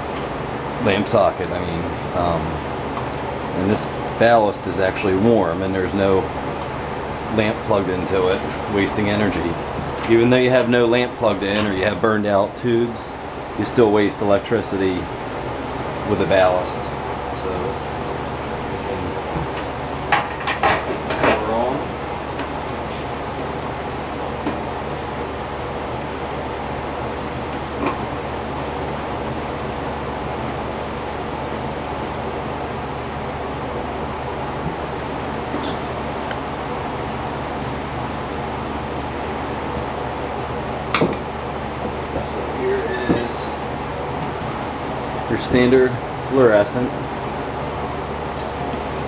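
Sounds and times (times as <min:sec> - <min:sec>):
low electrical hum: 0:00.0 - 0:49.0.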